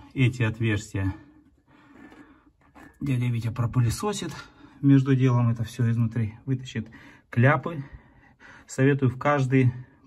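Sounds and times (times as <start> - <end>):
man speaking: 0.0 - 1.3, 3.0 - 7.9.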